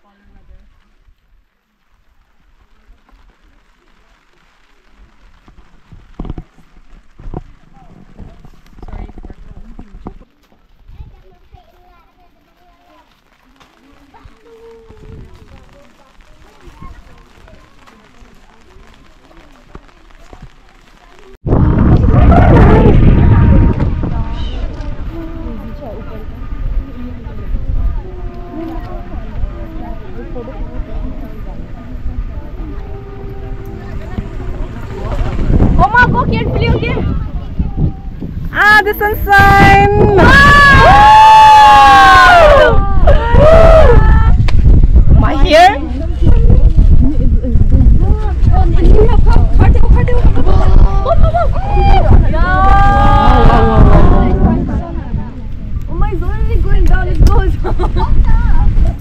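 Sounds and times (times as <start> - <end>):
women chattering: 7.6 - 21.4, 22.7 - 41.0, 45.0 - 59.0
wind buffeting microphone: 14.2 - 17.9, 21.4 - 59.0
faint distant voices: 23.7 - 39.2.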